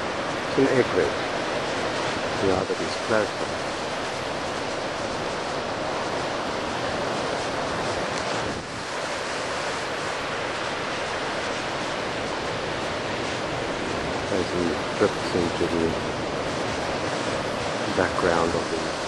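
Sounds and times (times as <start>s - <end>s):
surf washing over rocky shore: 0.0s - 19.0s.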